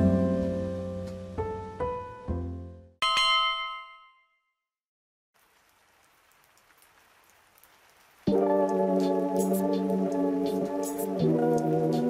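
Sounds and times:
faint rain falling: 0.0 - 2.5, 5.4 - 12.0.

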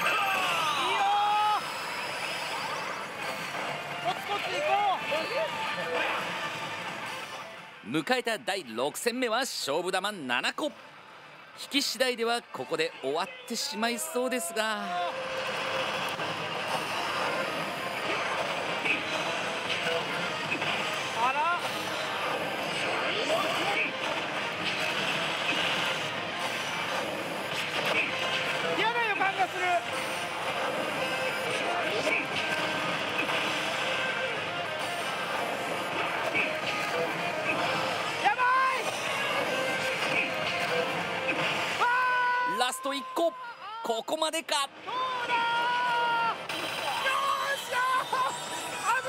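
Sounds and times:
gaming hall din: 0.0 - 49.0
slot machine music and effects: 1.6 - 10.9, 11.6 - 41.8, 46.3 - 49.0.

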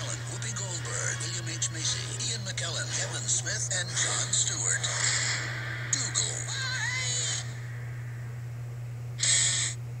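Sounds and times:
trailer soundtrack through tv speaker: 0.0 - 9.8
steady low hum: 0.0 - 10.0.

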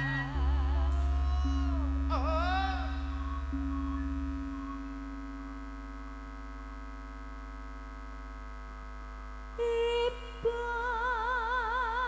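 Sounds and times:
bass: 0.0 - 12.0.

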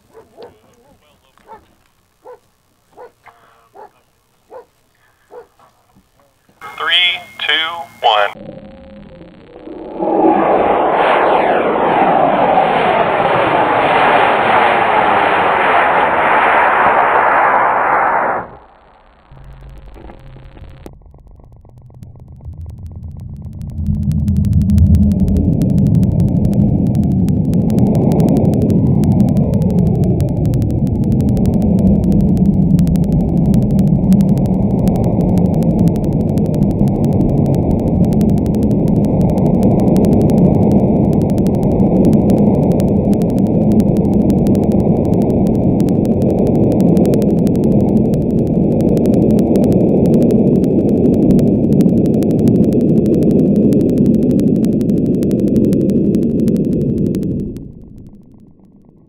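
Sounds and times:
deep muffled rumble: 6.6 - 17.7, 18.6 - 59.0.

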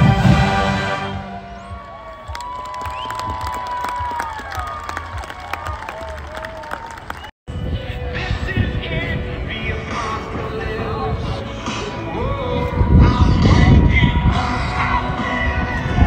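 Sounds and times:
marching band chord: 0.0 - 1.8
crowd cheering and applause: 0.0 - 7.4
crowd whooping: 1.0 - 7.3.

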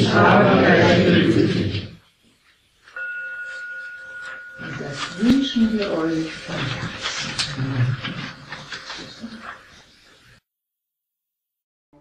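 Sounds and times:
meditation bell ringing: 2.9 - 8.5.

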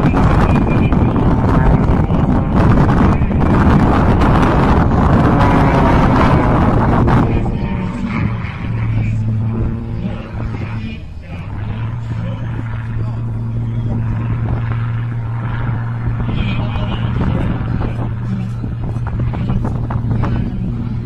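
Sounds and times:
aircraft engine drone: 0.0 - 21.0
wind buffeting microphone: 0.0 - 21.0.

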